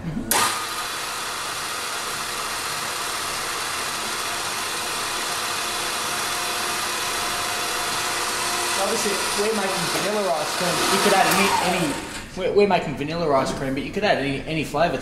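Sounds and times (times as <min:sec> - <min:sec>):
stand mixer motor whirring: 0:00.3 - 0:12.3.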